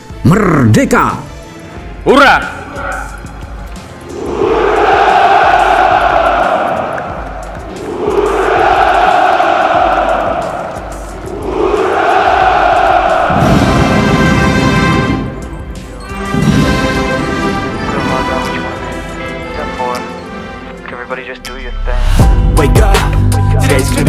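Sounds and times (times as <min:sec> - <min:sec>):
music: 0:00.0 - 0:24.0
soldiers shouting cheers: 0:04.1 - 0:14.3.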